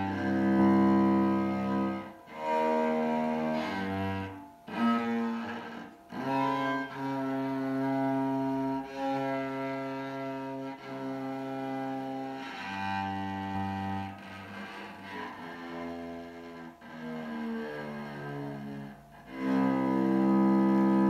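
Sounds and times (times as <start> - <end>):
cello long bowed notes: 0.0 - 21.0.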